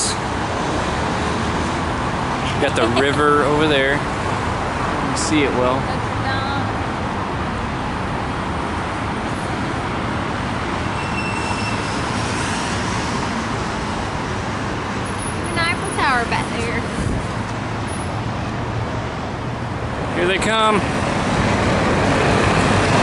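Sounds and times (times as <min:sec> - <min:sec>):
road traffic noise: 0:00.0 - 0:23.0
person speaking: 0:02.5 - 0:03.7.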